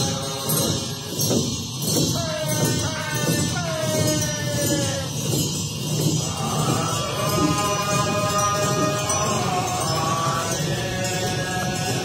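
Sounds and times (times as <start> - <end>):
voices chanting a mantra: 0.0 - 12.0.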